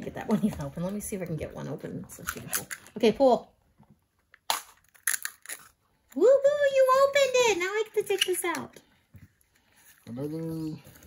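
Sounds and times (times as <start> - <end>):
plastic wrapper crackling open: 4.5 - 5.8.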